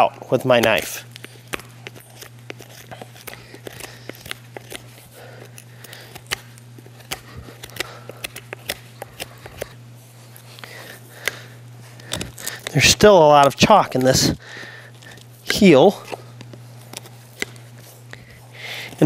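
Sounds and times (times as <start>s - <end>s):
steady low hum: 0.0s - 19.0s
hoof knife scraping: 0.6s - 19.0s.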